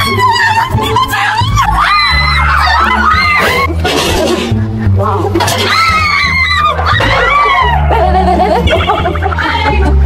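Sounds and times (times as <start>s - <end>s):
low background music: 0.0s - 10.0s
women screaming in fright: 1.3s - 3.8s, 5.5s - 8.0s.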